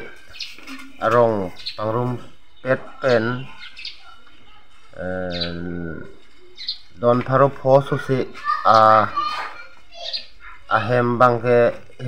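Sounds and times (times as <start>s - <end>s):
small bird chirping: 0.0s - 11.1s.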